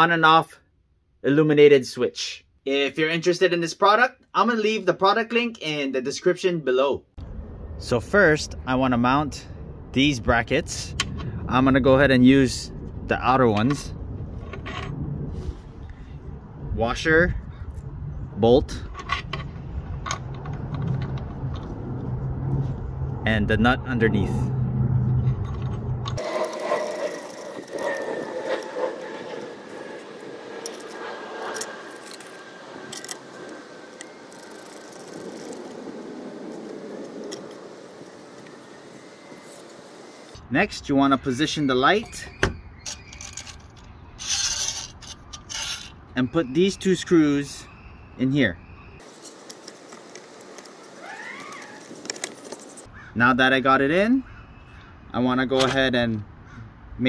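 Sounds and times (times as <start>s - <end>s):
metal bolts clinking and scraping: 18.8s - 21.7s, 42.8s - 46.0s
screws and metal hardware rattling: 42.8s - 46.0s.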